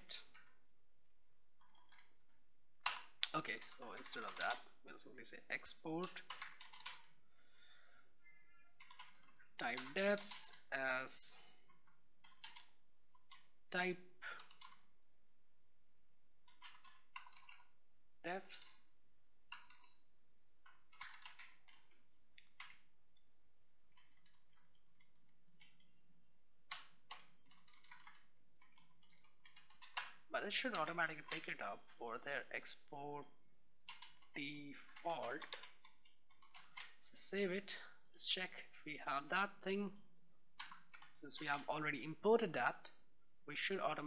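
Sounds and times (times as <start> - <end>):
computer keyboard typing: 5.6 - 7.1, 8.5 - 10.7, 11.4 - 13.4, 14.2 - 14.9, 16.4 - 17.7, 19.5 - 20.0, 20.7 - 22.8, 26.7 - 31.6, 33.8 - 37.0.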